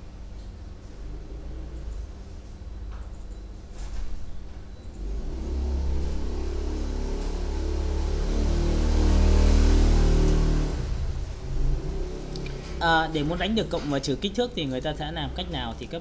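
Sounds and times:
vehicle engine rumble passing: 0:03.9 - 0:16.0.

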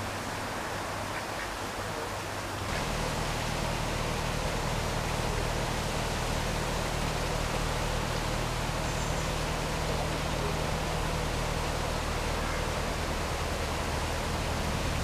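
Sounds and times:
boat engine humming: 0:00.0 - 0:15.0.

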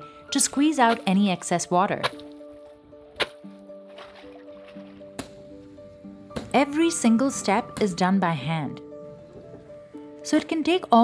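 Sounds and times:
background music with held notes: 0:00.0 - 0:11.0
wet cloth slapping on brick: 0:00.8 - 0:01.3, 0:01.9 - 0:02.5, 0:03.1 - 0:05.5, 0:06.4 - 0:06.6.

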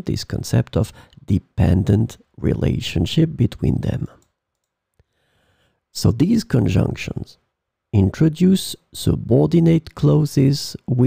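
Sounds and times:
person speaking: 0:00.0 - 0:04.4, 0:05.9 - 0:11.0.

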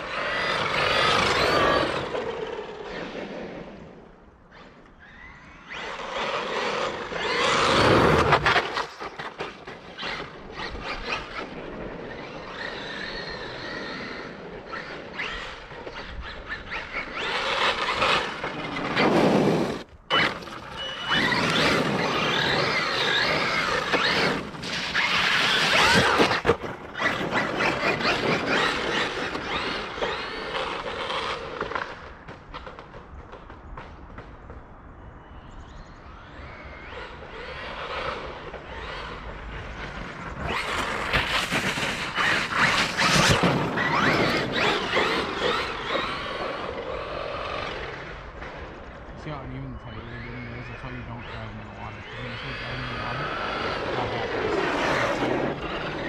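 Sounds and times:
tyres on wet pavement: 0:05.7 - 0:34.7, 0:36.9 - 0:49.1
electric motor whining: 0:09.8 - 0:31.8, 0:36.2 - 0:48.4, 0:50.0 - 0:56.0.

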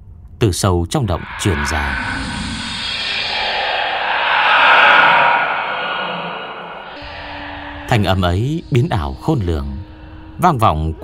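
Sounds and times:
eerie echoing whispering: 0:00.9 - 0:11.0.

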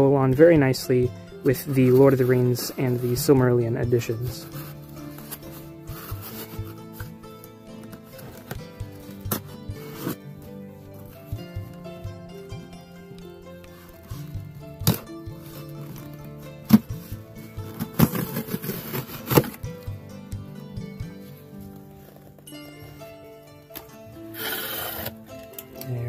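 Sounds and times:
background music: 0:00.0 - 0:26.0
cardboard flaps rustling: 0:04.4 - 0:07.1, 0:14.9 - 0:19.7
scraping rip of tape: 0:17.6 - 0:19.7, 0:24.3 - 0:25.3
knife slitting packing tape: 0:24.4 - 0:25.2.

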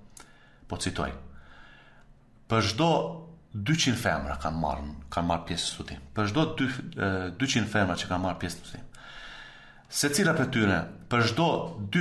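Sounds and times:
man talking: 0:00.7 - 0:01.3, 0:02.5 - 0:09.0, 0:09.9 - 0:12.0.

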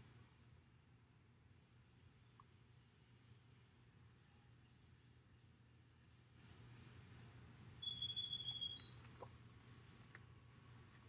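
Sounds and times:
songbird singing: 0:06.3 - 0:09.3.

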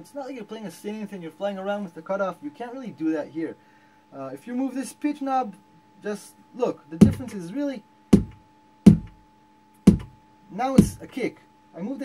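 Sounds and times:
synthesizer kick drum hits: 0:07.0 - 0:07.4, 0:08.1 - 0:09.2, 0:09.9 - 0:10.2, 0:10.8 - 0:11.0.

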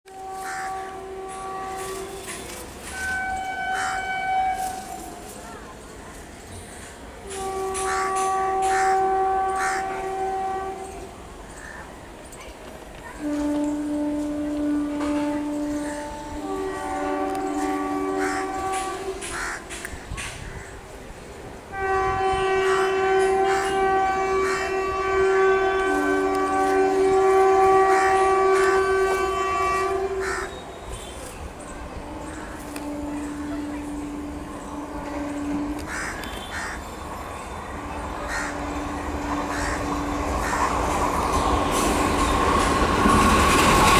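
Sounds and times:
locomotive air horn blast: 0:00.1 - 0:05.4, 0:06.5 - 0:11.3, 0:13.2 - 0:20.5, 0:21.7 - 0:43.9.

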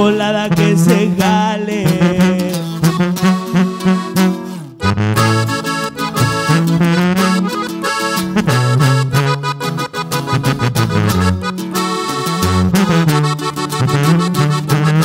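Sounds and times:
button accordion melody: 0:00.0 - 0:15.0
sousaphone bass line: 0:00.0 - 0:15.0
strummed acoustic guitar: 0:00.0 - 0:15.0.

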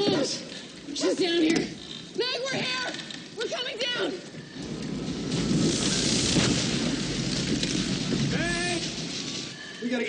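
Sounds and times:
electrical sparks hissing: 0:04.6 - 0:09.6.

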